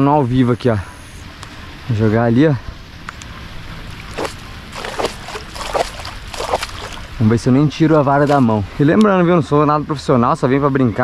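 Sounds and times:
bait splashing into pond: 3.9 - 7.2.

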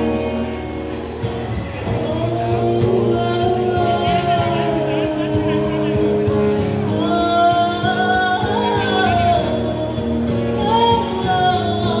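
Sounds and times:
acoustic guitar: 0.0 - 12.0
woman singing into a microphone: 1.8 - 12.0.

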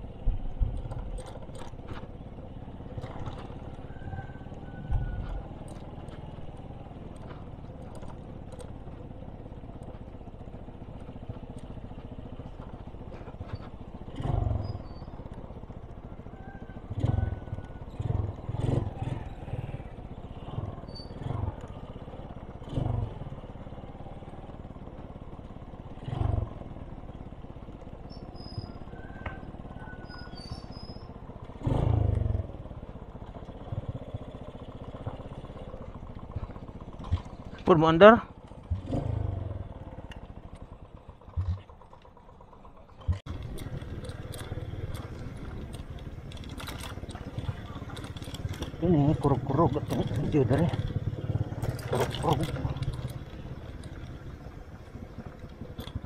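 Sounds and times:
motorcycle engine running: 0.0 - 56.0
road and wind noise: 0.0 - 56.0.

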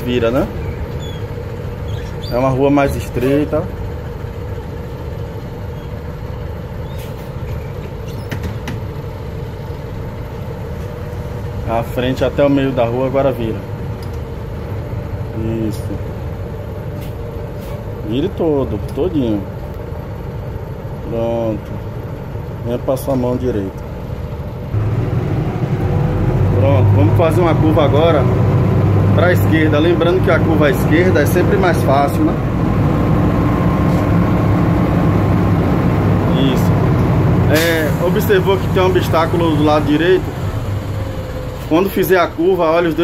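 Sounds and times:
bus engine running: 0.0 - 43.0.

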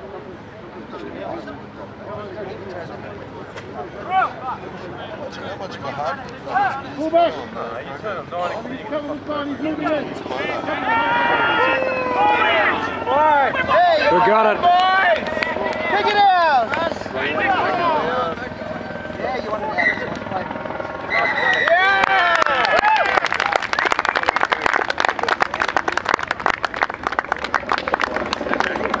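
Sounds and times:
people talking: 0.0 - 26.4, 27.3 - 29.0
men shouting: 9.9 - 18.4
crowd clapping: 14.2 - 16.9, 21.0 - 29.0.

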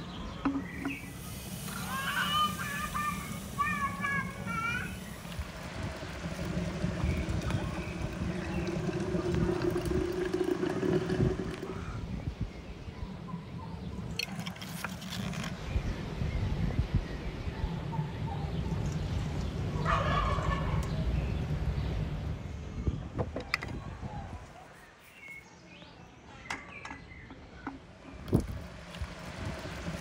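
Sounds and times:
water running from a tap: 1.1 - 11.8
steady low rumble: 2.7 - 14.2
wind rumble on microphone: 5.1 - 14.2, 15.4 - 24.5, 28.2 - 30.0.

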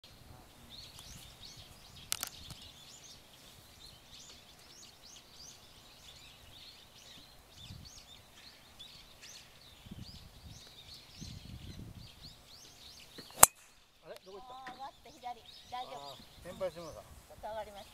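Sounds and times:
birds chirping: 0.0 - 17.9
golf club striking ball: 13.2 - 13.9.

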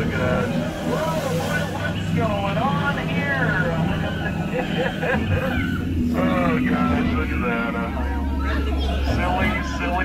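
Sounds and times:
boat motor hum: 0.0 - 10.0
voices: 0.0 - 10.0.

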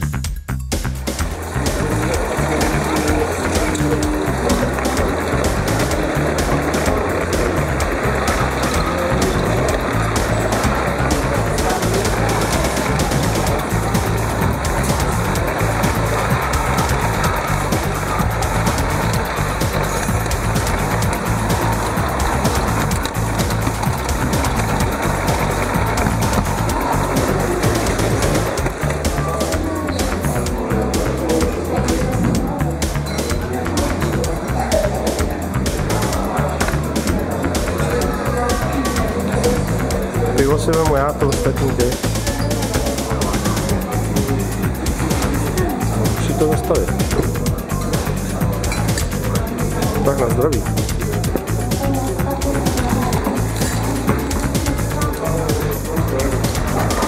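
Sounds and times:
music: 0.0 - 57.0
model train rumbling on track: 1.3 - 29.5.

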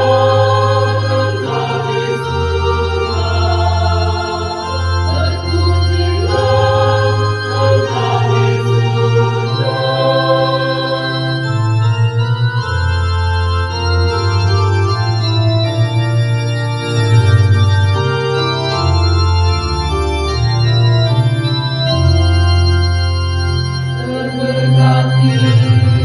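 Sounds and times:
deep bass line: 0.0 - 26.0
keyboard organ chords: 0.0 - 26.0.

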